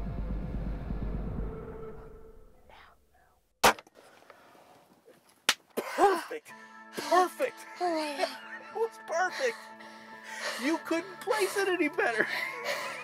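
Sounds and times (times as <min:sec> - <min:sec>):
background music: 0:05.8 - 0:13.0.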